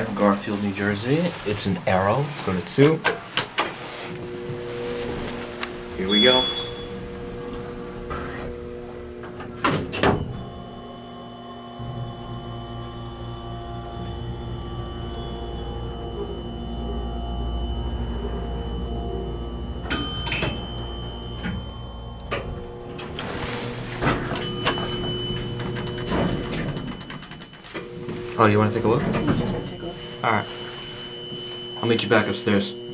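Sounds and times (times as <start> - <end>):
elevator doors sliding open: 3.5 - 10.8, 11.8 - 32.0
low hum of hydraulic pump: 3.7 - 32.9
high ringing tones: 4.1 - 32.9
elevator clicks: 19.8 - 29.8.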